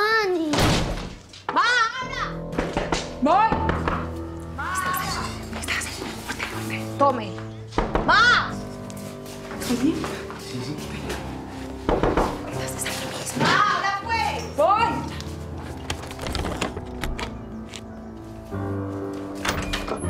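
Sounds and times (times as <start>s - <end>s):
soft background music: 1.5s - 20.0s
knocking on wooden door: 7.8s - 8.3s, 11.8s - 12.5s.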